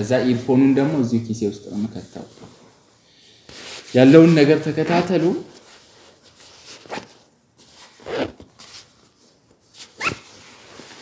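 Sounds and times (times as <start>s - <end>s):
jacket rustling: 3.5s - 11.0s.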